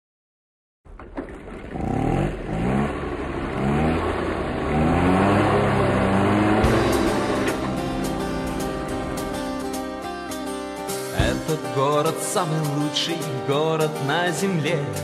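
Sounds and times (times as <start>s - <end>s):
car engine accelerating: 0.9s - 11.1s
music: 6.6s - 15.0s.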